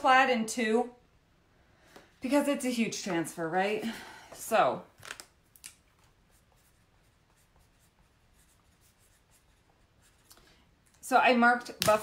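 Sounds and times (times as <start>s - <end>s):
marker scratching on paper: 6.2s - 10.3s.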